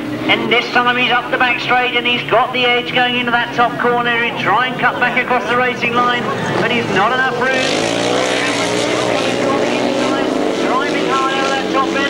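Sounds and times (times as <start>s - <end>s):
racing engines at high revs: 0.0s - 12.0s.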